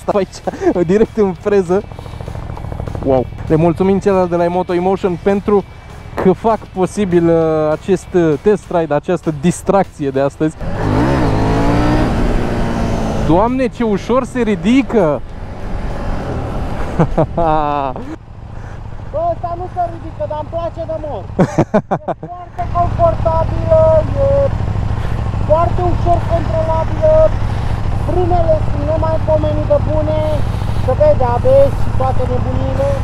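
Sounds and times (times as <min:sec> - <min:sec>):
man talking: 0:00.0 - 0:01.9, 0:02.9 - 0:10.6, 0:13.2 - 0:15.2, 0:17.1 - 0:18.2, 0:19.0 - 0:33.0
motorcycle engine running: 0:00.0 - 0:33.0.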